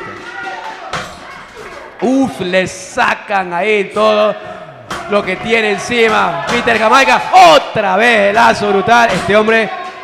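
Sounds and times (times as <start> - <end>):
murmur of crowd voices: 0.0 - 3.0, 3.7 - 10.0.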